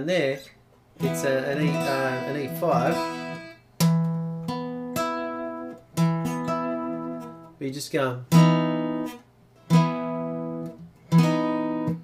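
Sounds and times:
acoustic guitar chord strums: 0:00.9 - 0:12.0.

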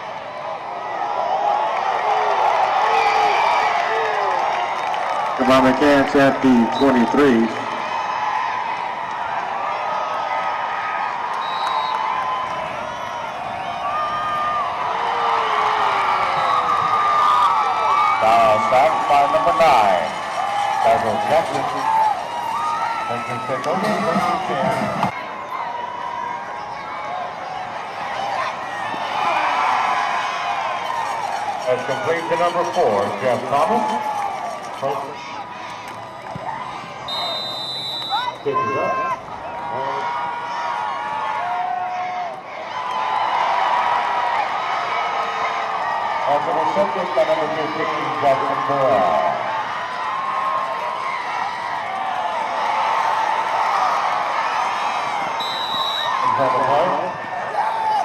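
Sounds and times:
stadium crowd cheering: 0:00.0 - 0:58.0
referee's whistle blast: 0:11.4 - 0:12.1, 0:37.1 - 0:38.7, 0:55.3 - 0:56.3.

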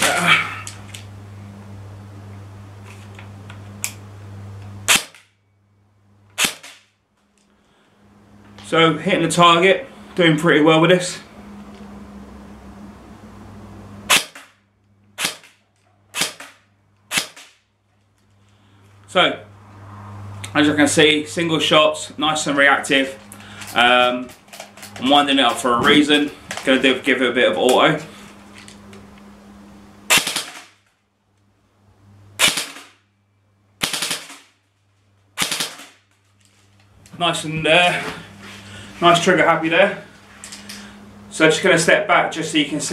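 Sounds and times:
airsoft gun shots: 0:04.9 - 0:05.3, 0:06.4 - 0:06.9, 0:14.1 - 0:14.6, 0:15.2 - 0:17.6, 0:30.1 - 0:30.8, 0:32.4 - 0:33.0, 0:33.8 - 0:34.5, 0:35.4 - 0:36.0.

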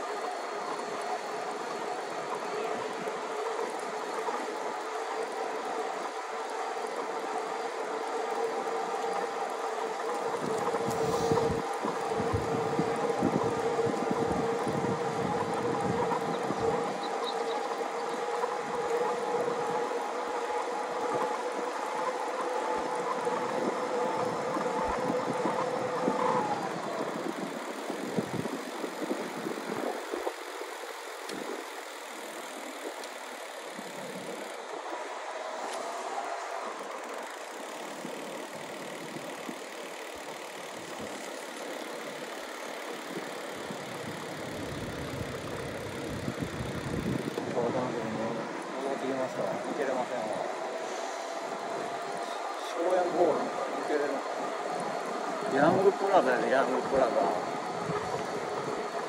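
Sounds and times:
electric bike motor whining: 0:00.0 - 0:59.0.

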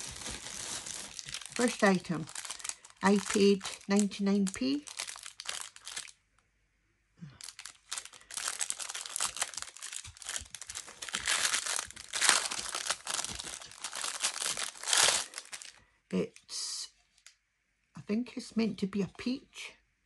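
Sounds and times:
plastic bag crinkling: 0:00.0 - 0:06.2, 0:07.3 - 0:15.8.

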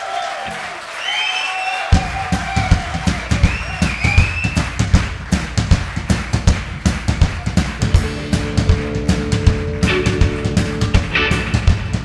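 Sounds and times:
drum kit fast beat: 0:01.8 - 0:12.0.

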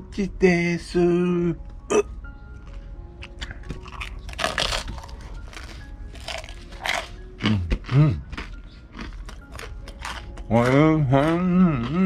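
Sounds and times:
soft background music: 0:00.0 - 0:12.0
crunching and chewing toast: 0:02.6 - 0:12.0
person humming: 0:07.5 - 0:08.3, 0:11.0 - 0:12.0.

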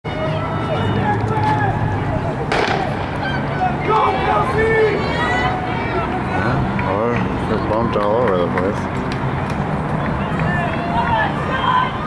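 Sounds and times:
spectators talking: 0:00.1 - 0:12.0
starting gun crack with echo: 0:02.5 - 0:03.2.

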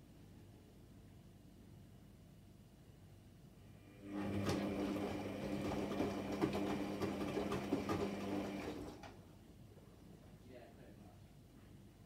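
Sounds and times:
washing machine drum motor hum: 0:04.0 - 0:09.2
laundry tumbling and clicking: 0:04.2 - 0:09.2.

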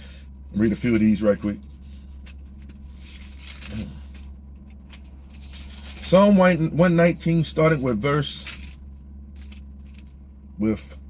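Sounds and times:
vehicle cabin hum: 0:00.0 - 0:11.0
pages being turned: 0:02.2 - 0:06.2, 0:07.8 - 0:10.2.

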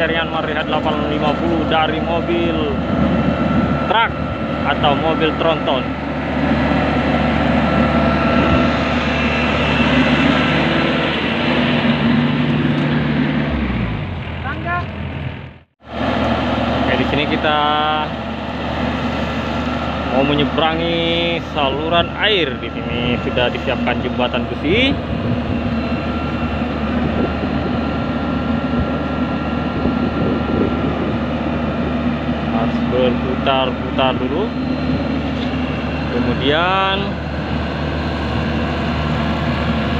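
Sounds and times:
thin high whine: 0:00.0 - 0:13.8, 0:15.9 - 0:39.9
diesel engine running: 0:00.0 - 0:39.9.

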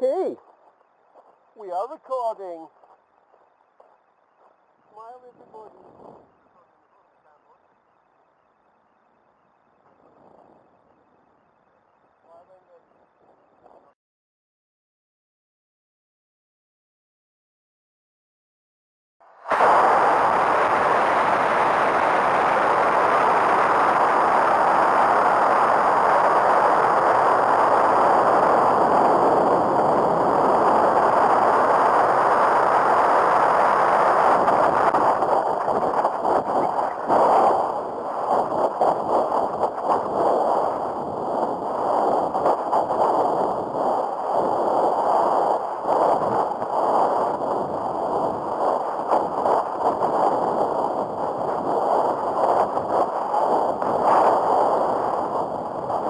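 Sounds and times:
air rushing over microphone: 0:19.4 - 0:56.0.

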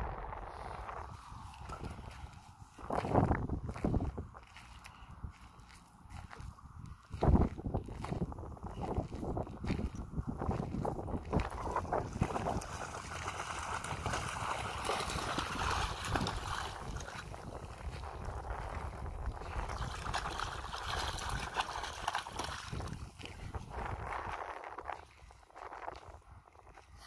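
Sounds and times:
wind on microphone: 0:00.0 - 0:27.0
footsteps crunching on gravel: 0:00.9 - 0:12.6
dog splashing through water: 0:11.3 - 0:17.6, 0:19.4 - 0:23.4.

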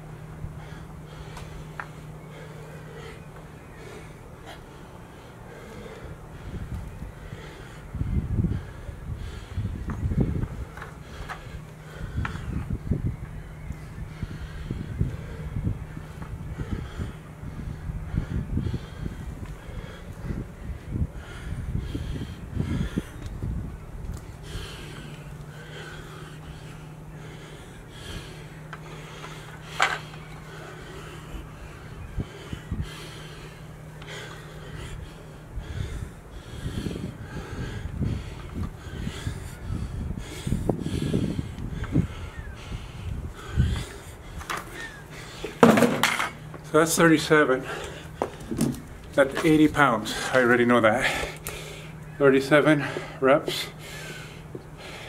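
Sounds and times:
man breathing heavily: 0:00.0 - 0:55.0.

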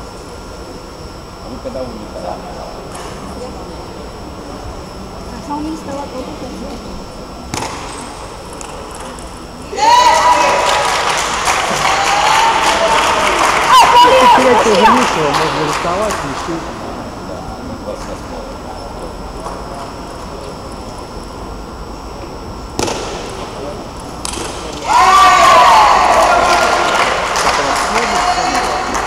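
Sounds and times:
faint high whine: 0:00.0 - 0:29.0
murmur of spectators: 0:00.0 - 0:29.0
table tennis ball hit: 0:07.5 - 0:08.0, 0:22.8 - 0:23.4.

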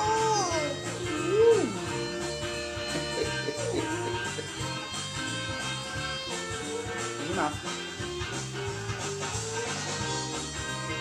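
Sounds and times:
toddler vocal sounds: 0:00.0 - 0:02.1
background music with steady beat: 0:00.0 - 0:11.0.

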